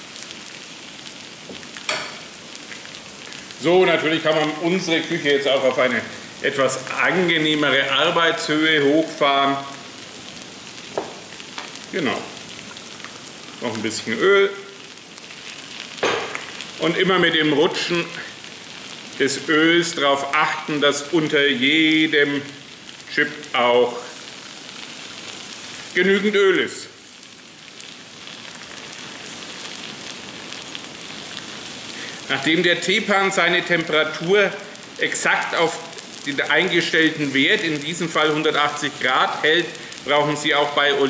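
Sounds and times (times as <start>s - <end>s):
potato slices sizzling in oil: 0.0s - 41.0s.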